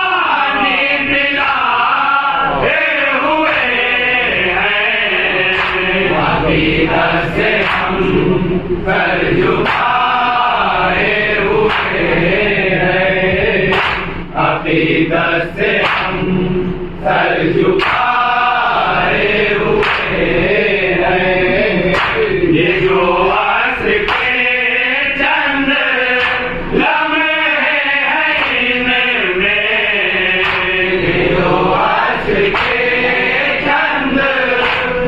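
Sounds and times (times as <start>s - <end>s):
men chanting together: 0.0s - 35.0s.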